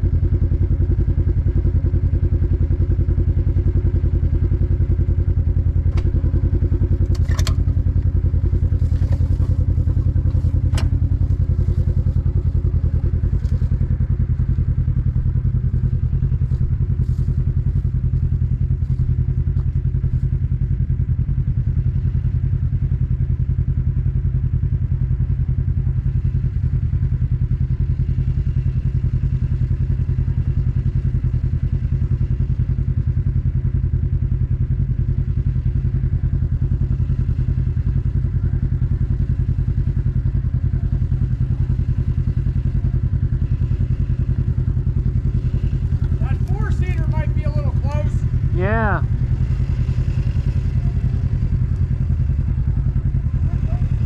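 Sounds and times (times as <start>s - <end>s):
utility vehicle engine humming: 0.0s - 54.0s
person calling out: 46.3s - 49.1s.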